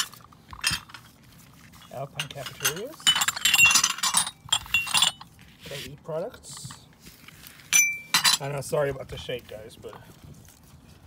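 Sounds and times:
glass ashtrays clinking: 2.0 - 5.3, 7.8 - 8.5.

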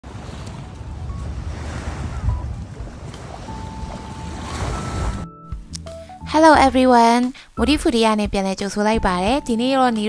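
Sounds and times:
small waves washing on shore: 0.0 - 5.3
wind rumbling on microphone: 0.0 - 5.4.

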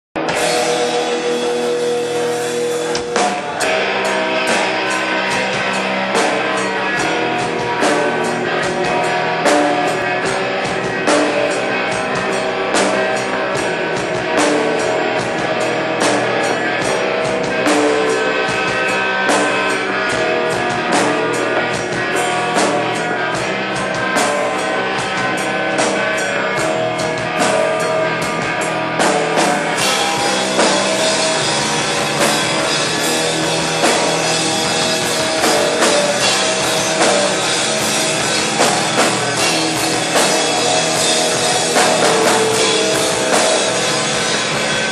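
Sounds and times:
drum kit: 0.2 - 44.9
electric guitars: 0.2 - 44.9.

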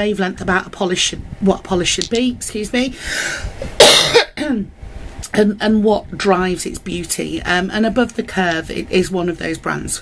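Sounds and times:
woman coughing: 3.8 - 4.6.

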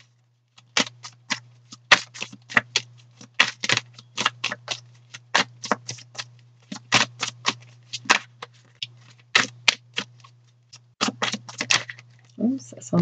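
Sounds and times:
cards shuffling: 0.0 - 12.3.

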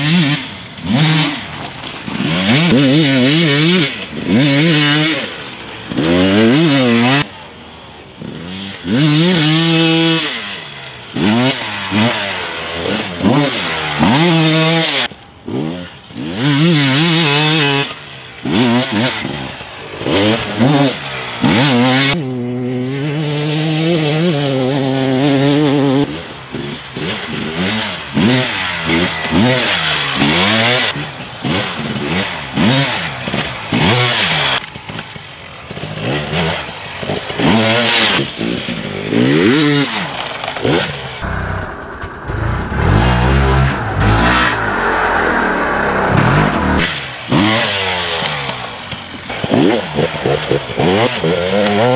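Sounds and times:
dirt bike engine revving: 0.0 - 51.9.

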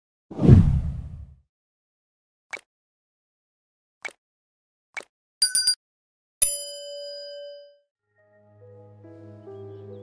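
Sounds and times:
deep whoosh: 0.4 - 1.3.

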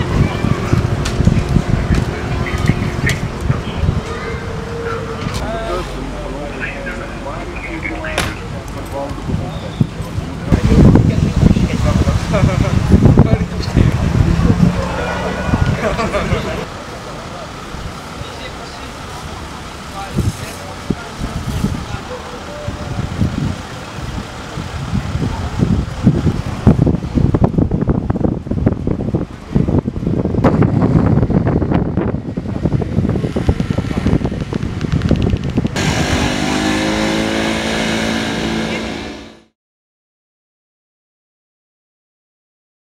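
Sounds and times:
wind buffeting microphone: 0.0 - 5.6, 8.4 - 16.7, 20.0 - 38.6
people talking: 0.0 - 26.4, 32.3 - 37.1, 38.4 - 39.2
car traffic: 0.0 - 39.6.

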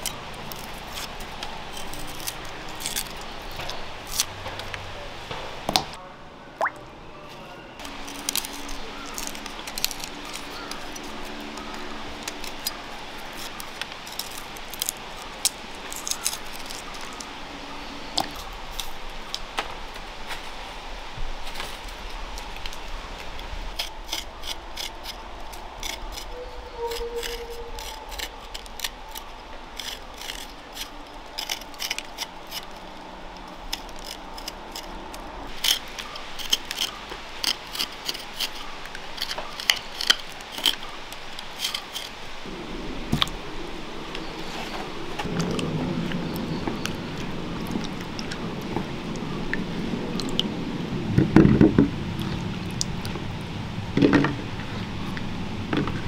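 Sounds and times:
knife clicking and scraping: 33.7 - 42.1.

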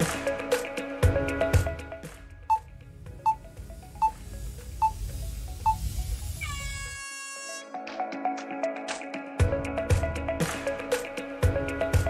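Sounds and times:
music: 0.0 - 12.0
short countdown beeps: 3.2 - 4.2, 5.6 - 5.9.

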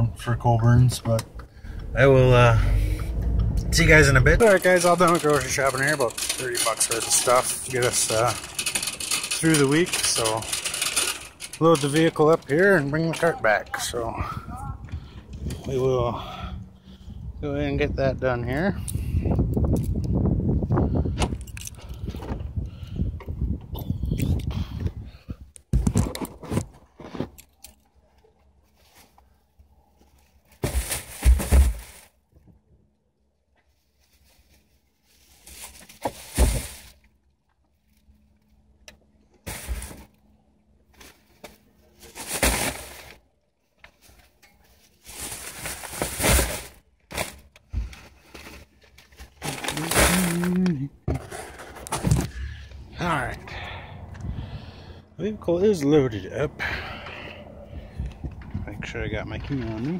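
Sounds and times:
plastic bags rustling: 3.9 - 13.3, 33.8 - 37.0, 39.4 - 40.2, 41.0 - 43.3, 44.0 - 52.0.

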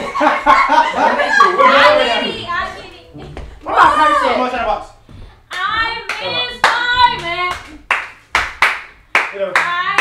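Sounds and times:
sharp hand claps: 5.5 - 10.0.

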